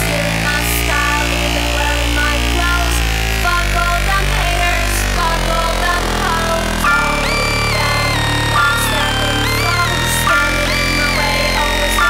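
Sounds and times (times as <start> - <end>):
deep synth bass note: 0.0 - 12.0
steady synth tones: 0.0 - 12.0
short high synth notes: 6.8 - 12.0.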